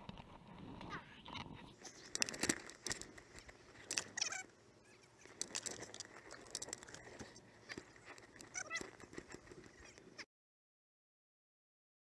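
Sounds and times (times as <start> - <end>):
fishing gear rustling and clicking: 0.0 - 10.2.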